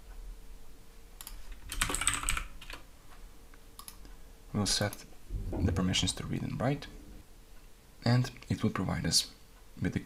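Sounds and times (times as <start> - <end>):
computer keyboard typing: 1.2 - 2.8.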